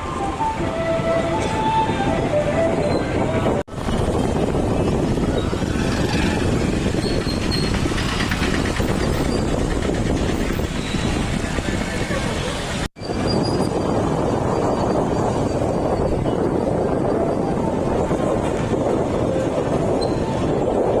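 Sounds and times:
steady rumbling noise: 0.0s - 21.0s.

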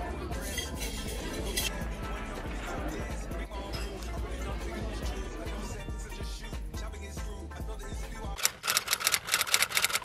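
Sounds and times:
hip-hop music with deep bass: 0.0s - 8.4s.

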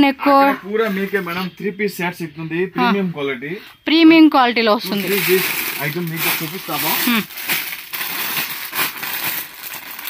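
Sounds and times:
plastic packaging crinkling: 4.8s - 10.0s.

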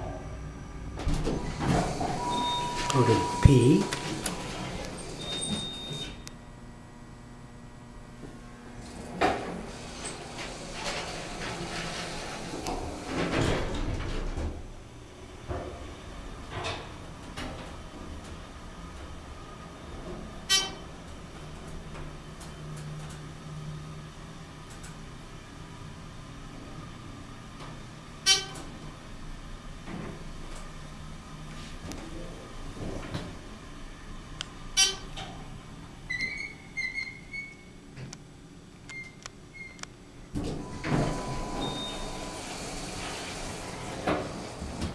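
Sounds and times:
elevator hum: 0.0s - 23.2s, 29.0s - 44.9s
elevator door clunk: 1.0s - 6.1s, 40.4s - 44.9s.

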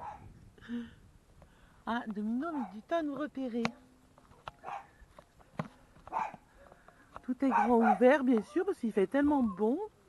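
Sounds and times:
faint dog bark: 0.0s - 0.3s, 2.5s - 2.9s, 4.3s - 5.0s, 6.0s - 6.8s, 7.4s - 8.2s.

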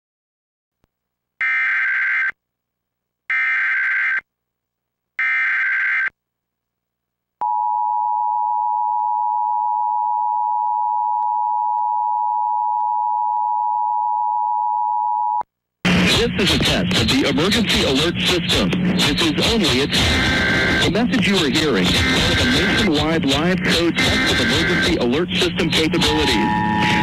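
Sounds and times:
harsh two-tone attention signal: 20.0s - 27.0s
screeching data tones: 23.7s - 27.0s.

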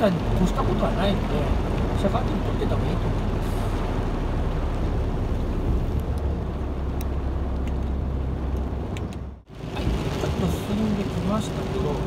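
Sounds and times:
diesel truck engine rumble: 0.0s - 12.0s
tyre noise on wet road: 0.0s - 12.0s.

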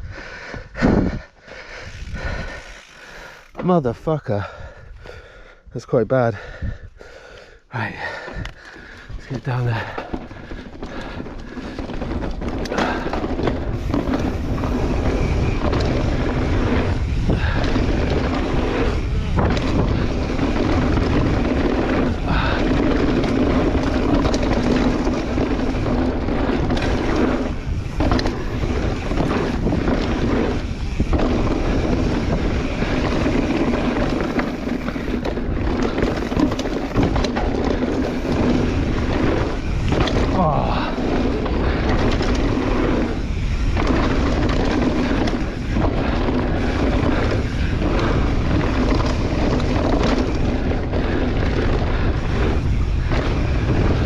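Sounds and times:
wind rushing over microphone: 0.0s - 2.8s, 7.8s - 54.0s
bike tyre roar on dirt: 0.0s - 54.0s.

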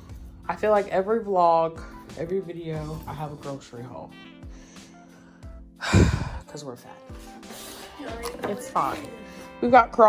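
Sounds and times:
soft background music: 0.0s - 10.0s
woman sighing: 5.8s - 6.5s.

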